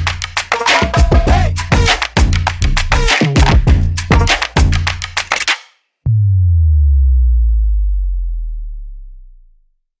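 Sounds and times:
deep synthesized bass boom: 0:06.1 - 0:09.8.

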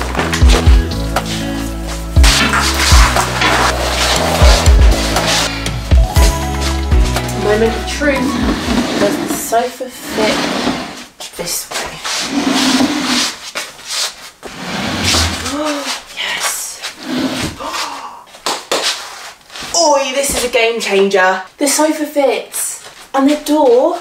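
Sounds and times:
sofa scraping across floor: 0:00.1 - 0:05.7, 0:06.5 - 0:15.6, 0:16.9 - 0:17.6
woman's wordless voice: 0:07.4 - 0:10.6, 0:11.3 - 0:12.2, 0:15.4 - 0:17.0, 0:17.6 - 0:18.4, 0:19.7 - 0:24.0.

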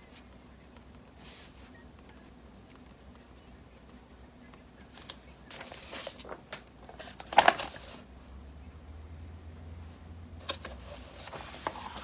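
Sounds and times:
paper rustling: 0:04.8 - 0:08.1, 0:10.4 - 0:12.0.

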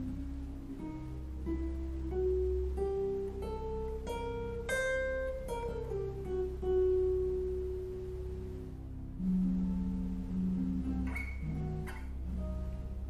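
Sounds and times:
guitar single-note line: 0:00.0 - 0:13.0.

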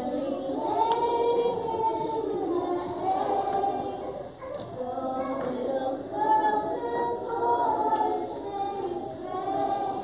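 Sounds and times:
children singing together: 0:00.0 - 0:10.0.

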